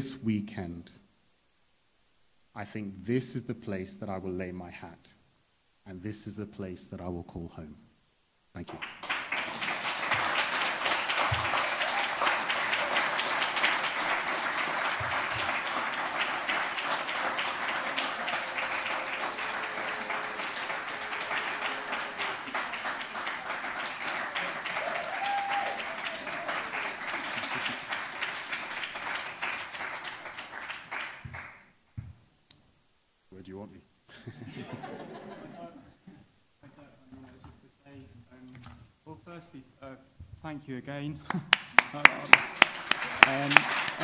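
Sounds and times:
audience applauding: 8.7s - 31.7s, 41.3s - 44.0s.

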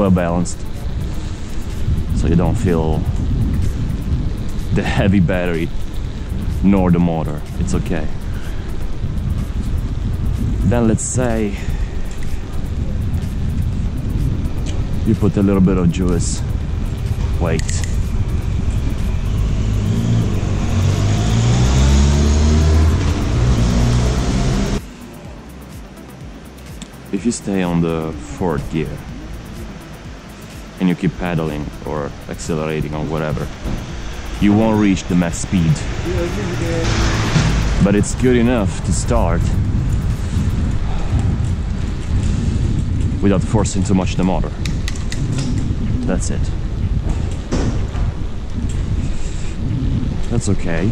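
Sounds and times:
wind buffeting microphone: 0.0s - 24.9s, 27.2s - 50.9s
road noise: 0.0s - 50.9s.

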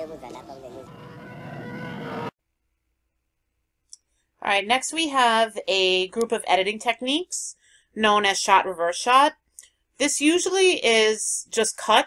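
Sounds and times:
vehicle noise: 0.0s - 2.3s.

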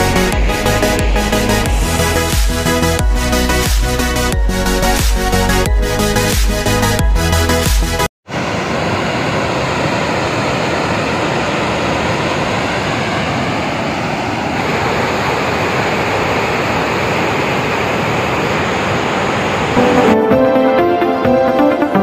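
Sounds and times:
water rushing through dam spillway: 8.3s - 19.8s.

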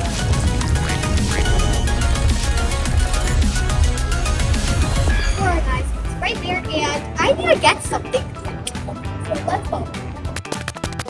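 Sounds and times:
background music: 0.0s - 11.0s
girl speaking: 5.4s - 8.6s.

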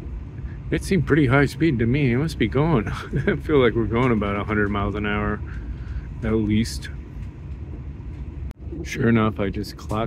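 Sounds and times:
train rumble inside carriage: 0.0s - 10.0s.

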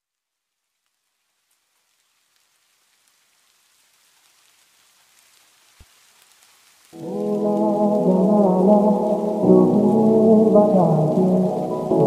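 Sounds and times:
rain patter: 0.2s - 12.0s.

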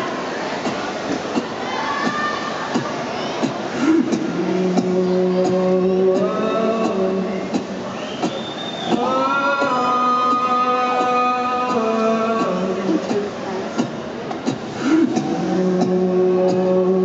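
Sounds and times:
person singing long notes: 1.3s - 17.0s.

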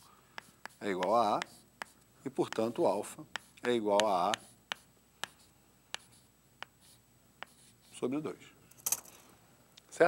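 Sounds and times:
chalk scratching on board: 0.0s - 8.1s
chalk tapping on chalkboard: 0.4s - 8.0s.

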